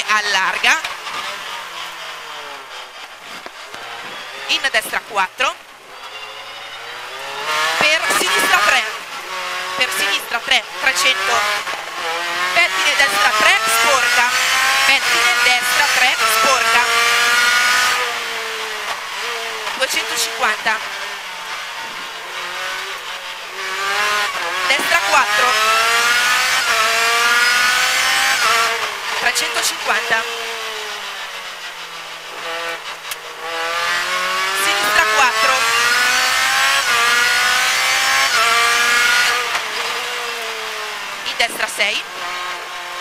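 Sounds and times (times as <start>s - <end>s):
car engine revving hard: 0.0s - 43.0s.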